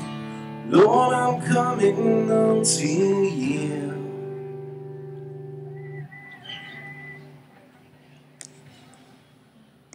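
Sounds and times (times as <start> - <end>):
acoustic guitar chord ringing: 0.0 - 7.6.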